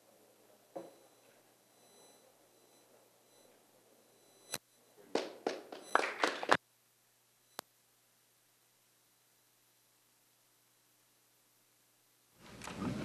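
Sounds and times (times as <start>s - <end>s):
audience applause: 5.1s - 6.6s.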